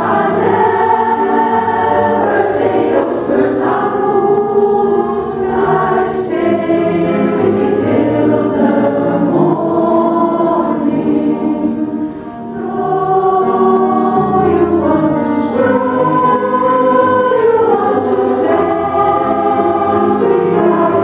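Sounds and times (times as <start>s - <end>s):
women's choir singing: 0.0s - 21.0s.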